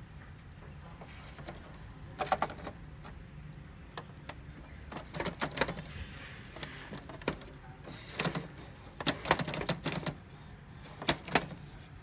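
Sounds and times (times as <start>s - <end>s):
printer mechanism working: 0.7s - 12.0s.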